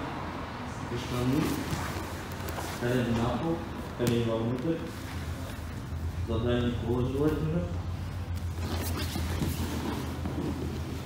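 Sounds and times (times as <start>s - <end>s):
steady low hum: 0.0s - 11.0s
bodies shifting on a mat: 8.4s - 11.0s.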